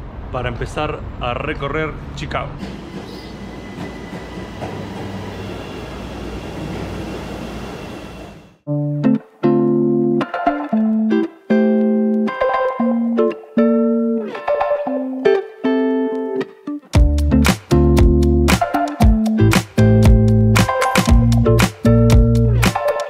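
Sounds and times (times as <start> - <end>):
train rumbling into station: 0.0 - 8.6
guitar-led background music: 8.7 - 23.0.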